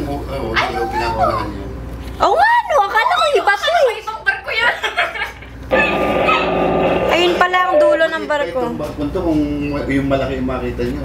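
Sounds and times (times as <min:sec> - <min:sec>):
steady rushing noise: 0:05.7 - 0:08.2.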